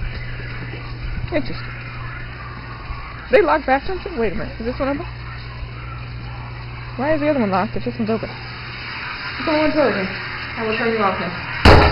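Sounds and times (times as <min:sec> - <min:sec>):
low mechanical hum: 0:00.0 - 0:11.9.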